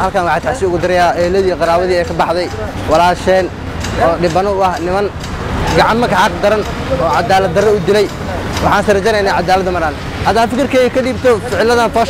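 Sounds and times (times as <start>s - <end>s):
man speaking close to microphone: 0.0s - 12.0s
street traffic hum: 0.0s - 12.0s.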